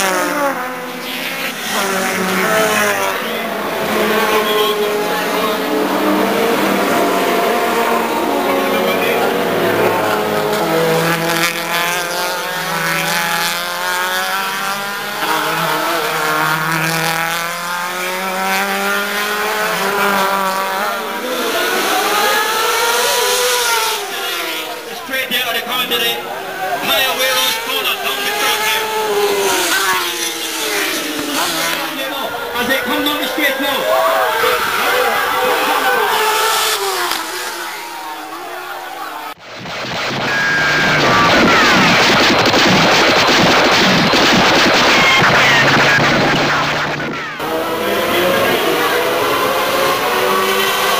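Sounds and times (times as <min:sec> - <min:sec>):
race car engines accelerating: 0:00.0 - 0:50.9.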